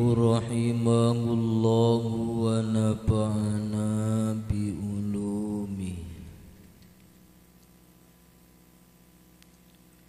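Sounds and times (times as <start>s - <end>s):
man chanting in held notes: 0.0s - 6.6s.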